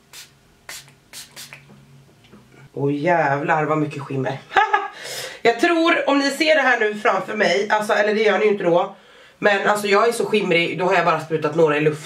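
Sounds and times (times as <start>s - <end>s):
spray bottle hissing puffs: 0.0s - 1.7s.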